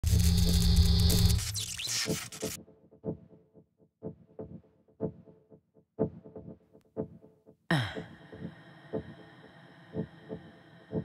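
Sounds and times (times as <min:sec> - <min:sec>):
loud buzzing hum with hiss: 0:00.0 - 0:02.6.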